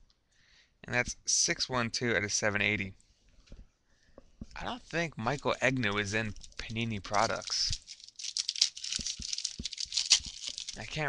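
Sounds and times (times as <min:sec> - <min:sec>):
foil wrapper crinkling and tearing: 0:05.0 - 0:11.0.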